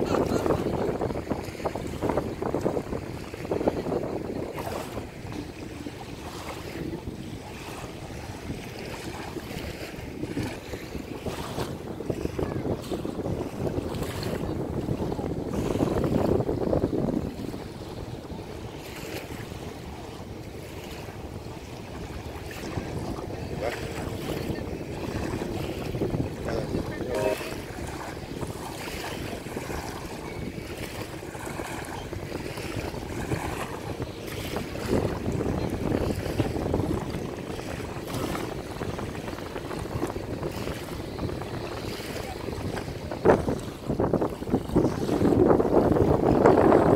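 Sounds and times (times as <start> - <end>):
small river waves: 0.0 - 46.9
wind buffeting microphone: 0.0 - 46.9.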